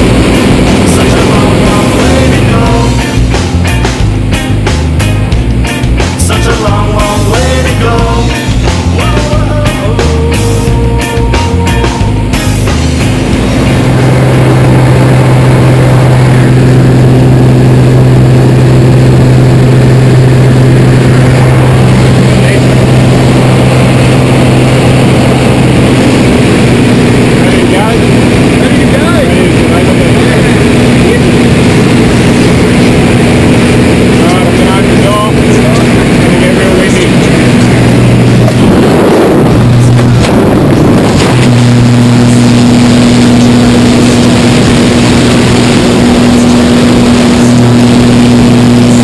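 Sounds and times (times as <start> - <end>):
light aircraft engine droning: 0.0 - 49.0.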